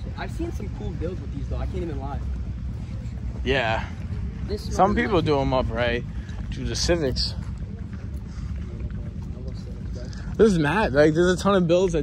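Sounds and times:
faint voices: 0.0s - 12.0s
low uneven rumble: 0.0s - 12.0s.

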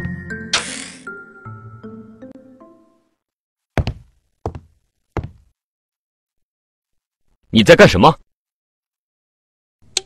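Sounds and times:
heavy knocking thuds: 3.8s - 5.5s.

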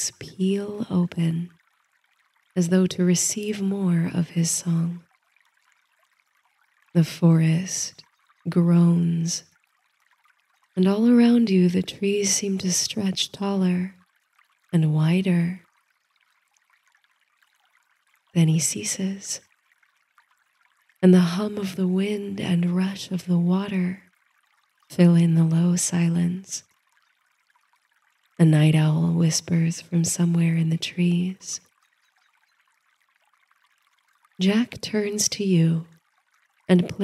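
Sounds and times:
faint steady hiss: 0.0s - 37.0s
faint trickling water: 0.0s - 37.0s.

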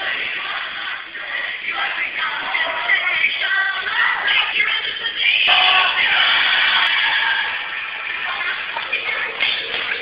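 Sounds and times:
voices over speakers: 0.0s - 10.0s.

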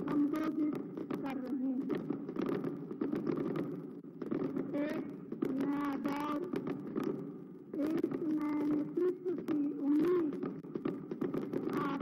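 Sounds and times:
firecrackers popping: 0.0s - 12.0s.

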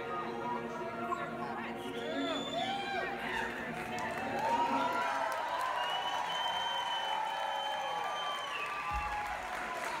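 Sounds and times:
audience applauding and cheering: 2.5s - 10.0s.

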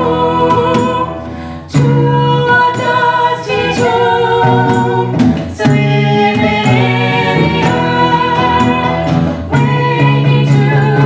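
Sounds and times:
group singing in harmony: 0.0s - 11.0s.

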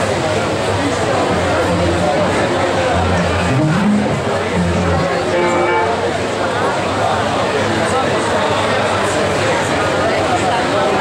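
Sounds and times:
electric bass: 1.2s - 6.2s
electric guitar: 1.2s - 6.2s
drums: 1.3s - 5.6s.

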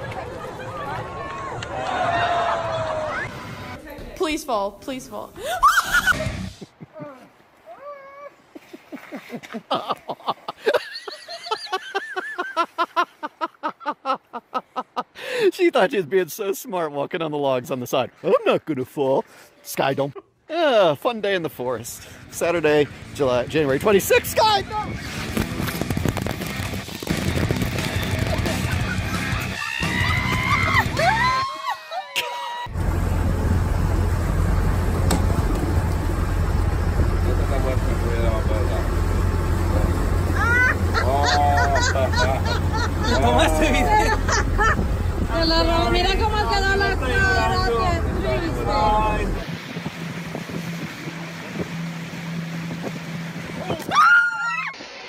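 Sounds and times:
wind: 0.0s - 55.0s
high-pitched laughter: 5.4s - 15.1s, 28.3s - 32.7s, 40.3s - 44.8s
rising-and-falling calls: 28.9s - 32.7s
motorboat engine drone: 32.7s - 53.8s
rush of boat wake: 33.0s - 55.0s.

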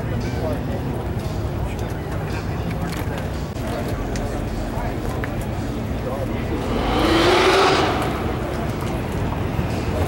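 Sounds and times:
car driving past: 6.4s - 9.1s.

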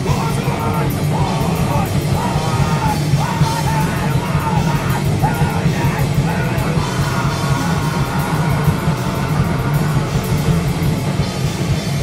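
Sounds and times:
punk rock band playing live: 0.0s - 12.0s.

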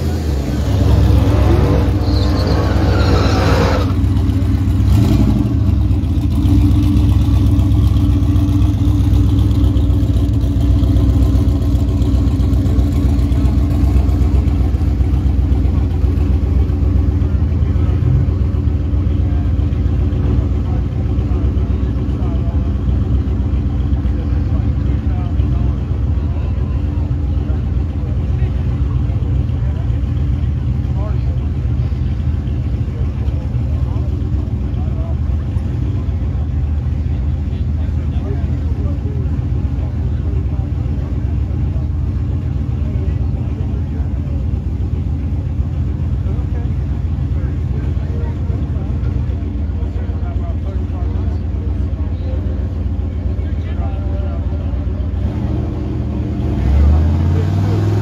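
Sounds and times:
loud engine: 0.0s - 58.0s
race car engines idling: 0.0s - 58.0s.

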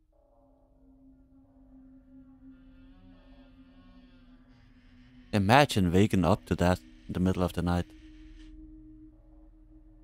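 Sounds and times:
faint low drone: 0.0s - 10.0s.

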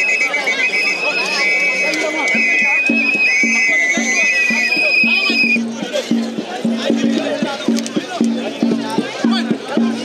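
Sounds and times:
rapid drum beat: 1.6s - 10.0s.

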